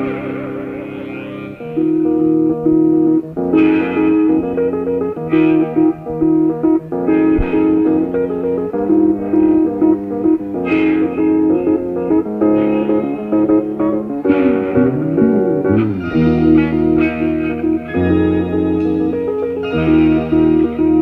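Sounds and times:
guitar line: 0:00.0 - 0:21.0
live rock band playing blues: 0:10.6 - 0:21.0.

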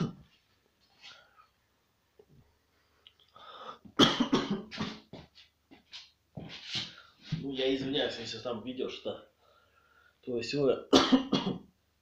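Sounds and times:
man coughing: 0:04.0 - 0:05.1, 0:10.9 - 0:11.7.

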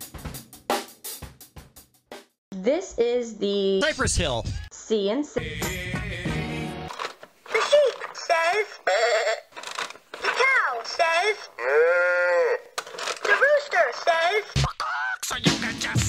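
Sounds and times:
music: 0:00.0 - 0:02.4, 0:05.4 - 0:06.9, 0:14.6 - 0:16.0
farm animal sounds from toy: 0:07.5 - 0:09.5, 0:10.2 - 0:15.2
toy recorded voice: 0:07.5 - 0:09.5, 0:10.2 - 0:15.4.

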